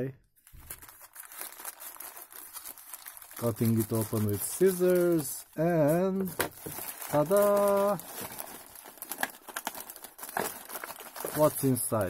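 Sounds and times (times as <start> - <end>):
plastic bag rustling and crinkling: 0.4 - 12.0.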